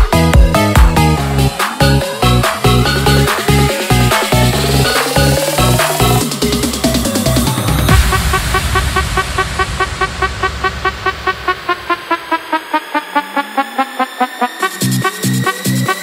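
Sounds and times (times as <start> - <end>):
electronic dance music: 0.0 - 16.0
heavy kick and bass beat: 0.0 - 16.0
repeating synth notes: 0.0 - 16.0
rising synth sweep: 0.5 - 16.0.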